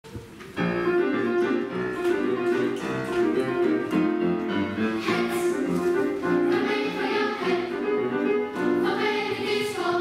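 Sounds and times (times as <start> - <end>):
children's choir singing: 4.8 - 10.0.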